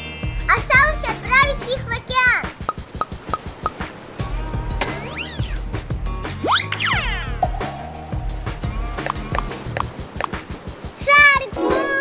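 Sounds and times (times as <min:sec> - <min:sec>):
background music with beat: 0:02.4 - 0:11.1.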